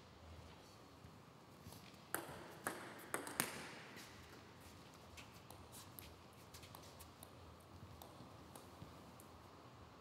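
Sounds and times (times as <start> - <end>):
table tennis ball bouncing: 2.1 - 3.8.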